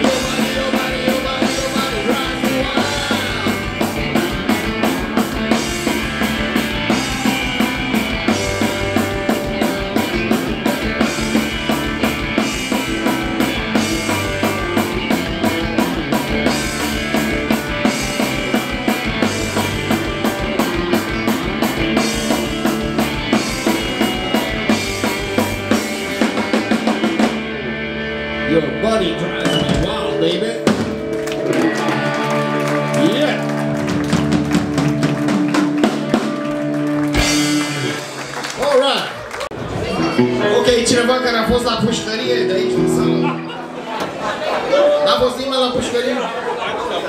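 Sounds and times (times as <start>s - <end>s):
drum kit beat: 0.0s - 27.6s, 29.3s - 38.6s
bass guitar: 0.0s - 46.0s
electric guitars: 0.0s - 46.0s.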